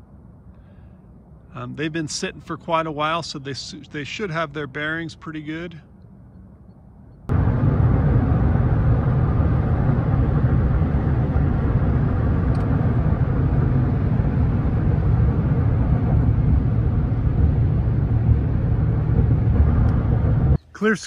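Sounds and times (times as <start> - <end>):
car cabin road rumble: 7.2 - 21.0.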